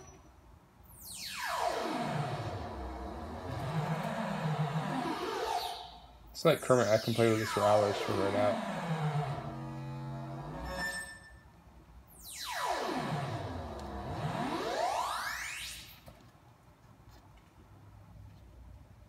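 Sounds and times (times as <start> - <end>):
synthesizer buzzy tone pitch sweep: 1.0 - 6.1, 6.7 - 11.2, 12.2 - 16.0.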